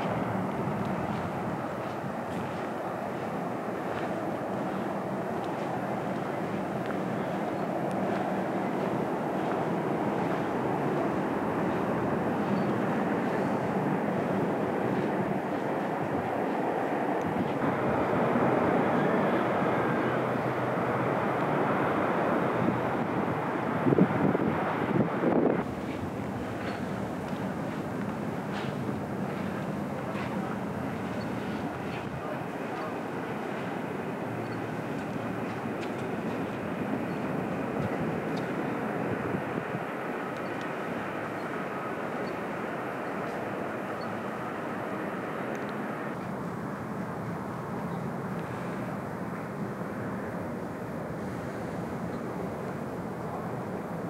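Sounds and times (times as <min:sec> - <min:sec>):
outdoor rumbling noise: 0:00.0 - 0:54.0.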